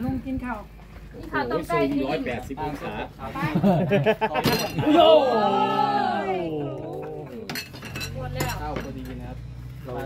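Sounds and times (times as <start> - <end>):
dishes clinking: 4.4 - 4.9, 7.4 - 9.2.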